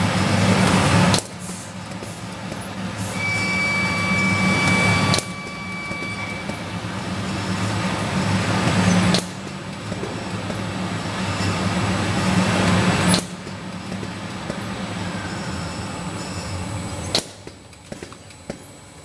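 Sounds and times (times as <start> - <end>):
machine clacking: 0.0 - 15.4
packing machine hum: 0.0 - 19.0.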